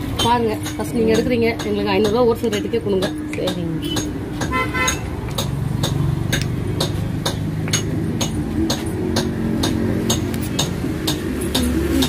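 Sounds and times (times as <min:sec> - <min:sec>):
low traffic hum: 0:00.0 - 0:12.0
sharp repeating clicks: 0:00.2 - 0:12.0
vehicle horn toot: 0:03.8 - 0:05.0.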